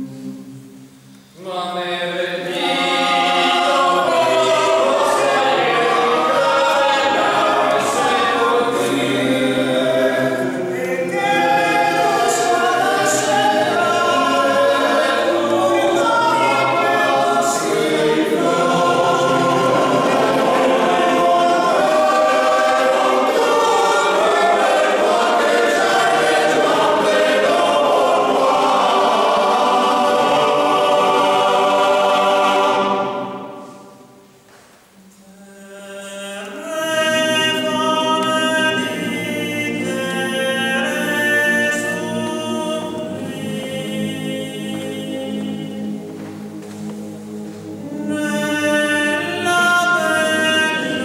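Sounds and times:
male voice choir singing: 0:01.4 - 0:34.0, 0:35.3 - 0:46.2, 0:47.8 - 0:51.0.

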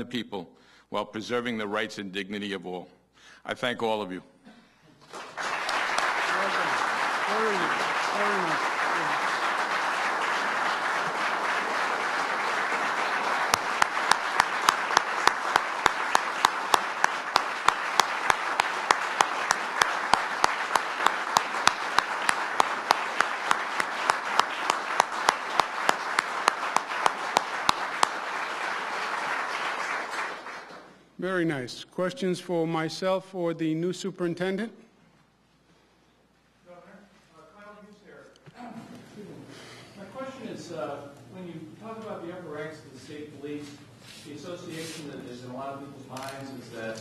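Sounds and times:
close hand claps: 0:05.0 - 0:31.0
roomful of people applauding: 0:05.0 - 0:31.2.

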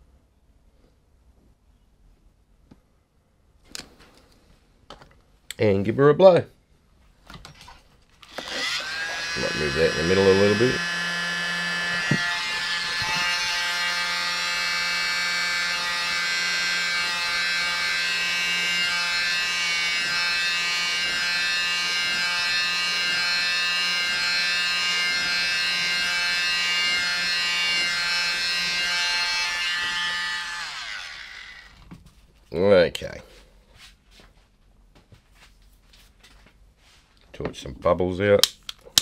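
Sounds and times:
hair dryer motor whine: 0:08.3 - 0:31.8.

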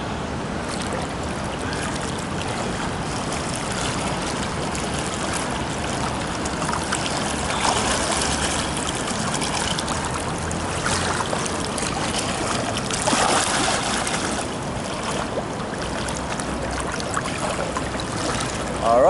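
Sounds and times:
pool water splashing: 0:00.0 - 0:19.0.

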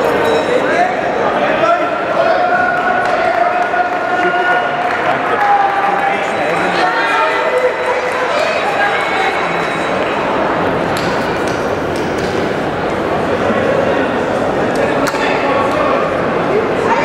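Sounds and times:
hubbub of many voices: 0:00.0 - 0:17.0.

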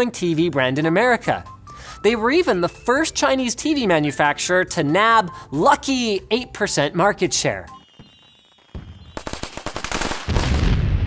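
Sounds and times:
heavy explosion with deep rumble: 0:10.2 - 0:11.0.

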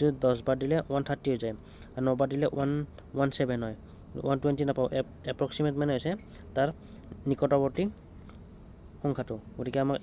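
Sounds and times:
man speaking: 0:00.0 - 0:08.0, 0:09.0 - 0:10.0
cricket chirping: 0:00.0 - 0:10.0.

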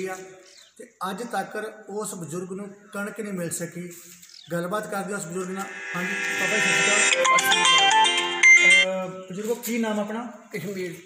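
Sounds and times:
stepped high notes: 0:05.3 - 0:08.8
electronic held chord: 0:05.5 - 0:08.8.

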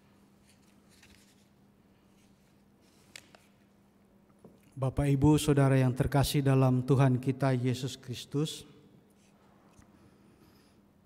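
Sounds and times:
low electrical hum: 0:00.0 - 0:11.0
paper rustling: 0:00.4 - 0:01.5.

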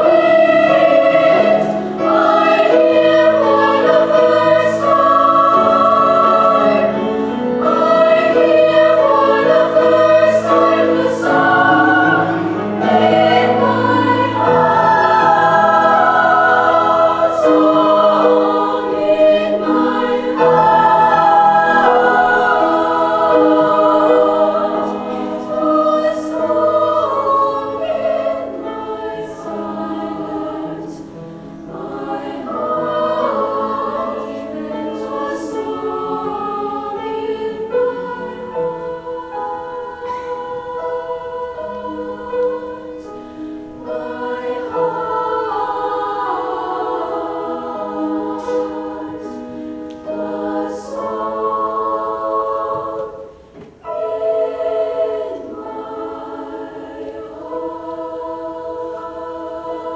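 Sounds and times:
girls' choir singing: 0:00.0 - 0:59.9
piano accompaniment: 0:00.0 - 0:59.9.

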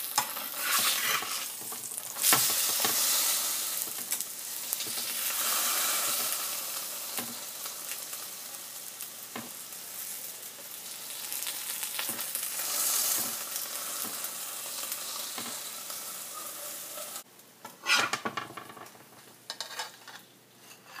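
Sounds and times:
flatbread sizzling on griddle: 0:00.0 - 0:17.3.

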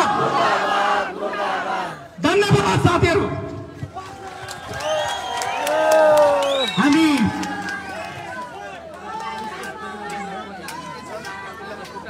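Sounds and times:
large crowd shouting together: 0:00.0 - 0:03.2.

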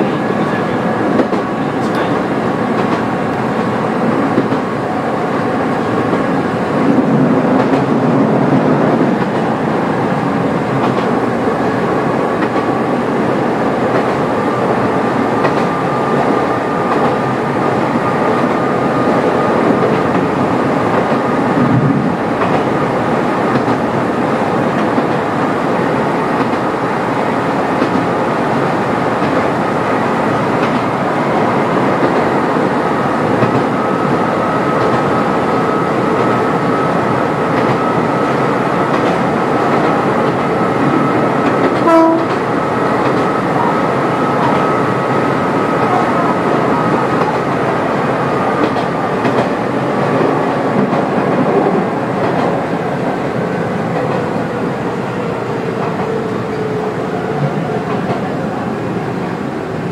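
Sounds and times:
wheel and rail noise: 0:00.0 - 0:59.9
train horn toot: 0:41.8 - 0:42.4.

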